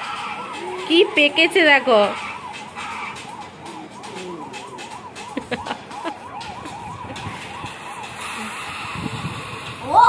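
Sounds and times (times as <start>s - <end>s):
warbling siren-like tone: 0.0s - 9.8s.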